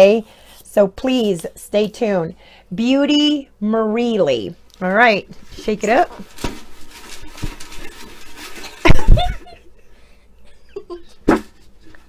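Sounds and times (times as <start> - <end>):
paper slips rattling in container: 5.9 - 9.4.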